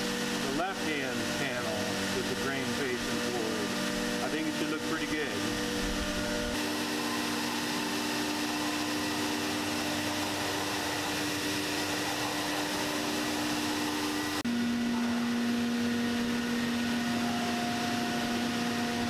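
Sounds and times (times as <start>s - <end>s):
cnc router humming: 0.0s - 19.0s
steady machine hum: 0.0s - 19.0s
vacuum pumps humming: 0.0s - 19.0s.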